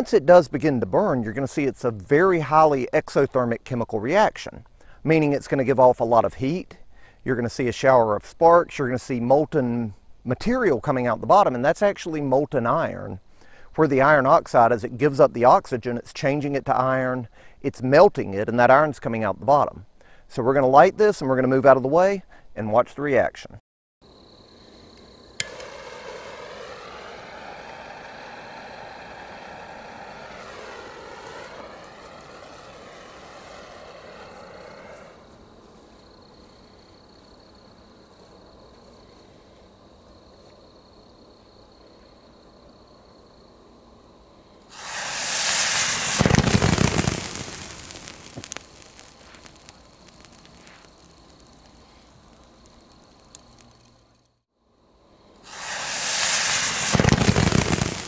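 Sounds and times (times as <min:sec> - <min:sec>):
thermite rushing hiss: 0:24.1 - 0:37.9, 0:44.7 - 0:54.0, 0:55.4 - 0:58.0
quiet steady hiss: 0:24.1 - 0:58.0
crackles and pops: 0:24.9 - 0:36.6, 0:44.7 - 0:54.4, 0:55.5 - 0:58.0.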